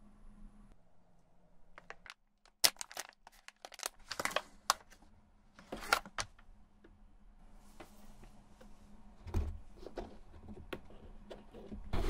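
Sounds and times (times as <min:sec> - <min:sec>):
foil pouch crinkling: 0:01.8 - 0:04.9.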